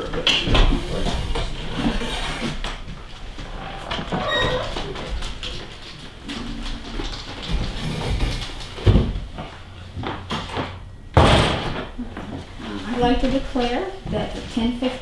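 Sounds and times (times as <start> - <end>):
door banging shut: 11.2 - 12.0.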